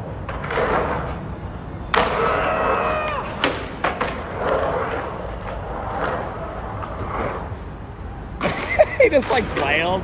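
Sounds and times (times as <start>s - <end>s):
skateboard clacking: 0.0s - 7.5s
skateboard wheels rolling on concrete: 0.0s - 10.0s.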